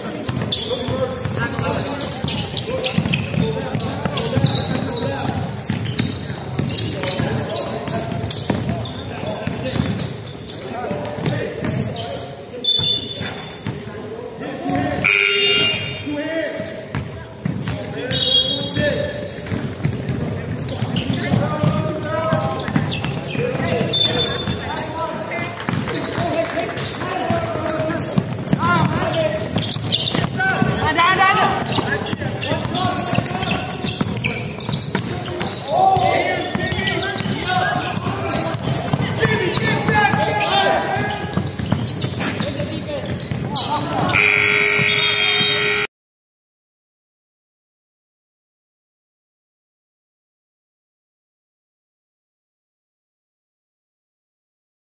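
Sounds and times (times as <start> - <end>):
basketball bouncing on wooden floor: 0.0 - 10.2, 10.9 - 11.9, 18.8 - 43.7
players calling out: 0.0 - 16.8, 17.6 - 45.9
sneaker squeaks: 0.0 - 45.9.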